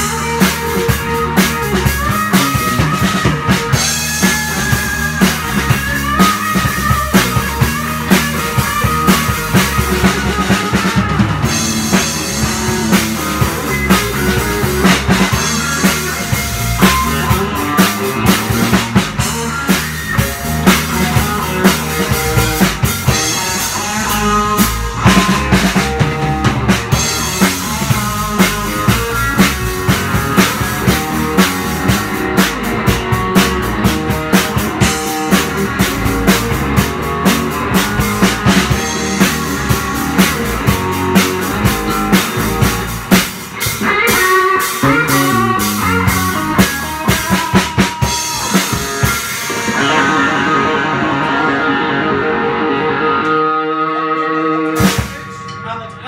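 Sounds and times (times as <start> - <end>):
drum kit: 0.0 - 56.0
electric guitar with bent notes: 0.0 - 56.0.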